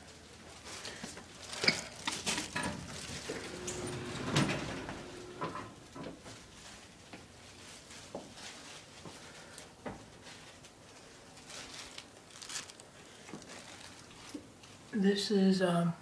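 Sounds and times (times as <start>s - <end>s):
elevator hum: 2.4s - 6.5s
elevator doors sliding open: 2.5s - 6.3s.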